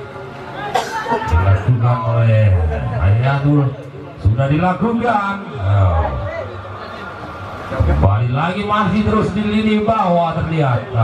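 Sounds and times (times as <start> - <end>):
steady background noise: 0.0 - 11.0
male commentator speaking: 1.2 - 6.6, 7.7 - 11.0.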